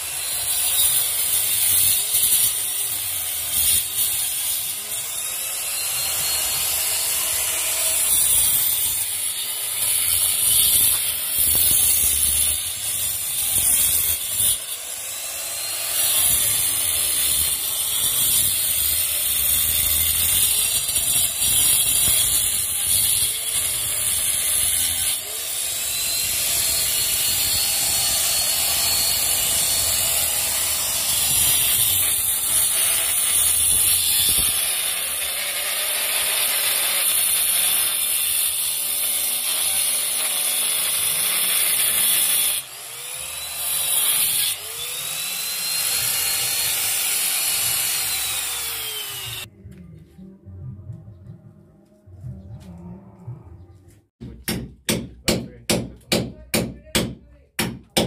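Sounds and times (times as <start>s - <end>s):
angle grinder cutting brick: 0.0s - 49.5s.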